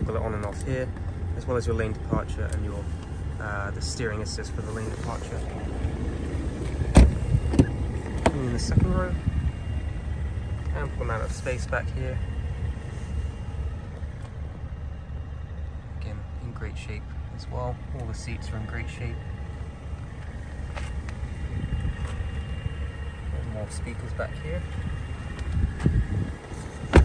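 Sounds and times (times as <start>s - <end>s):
low uneven rumble: 0.0s - 27.0s
car door shutting thud: 6.9s - 8.5s, 26.7s - 27.0s.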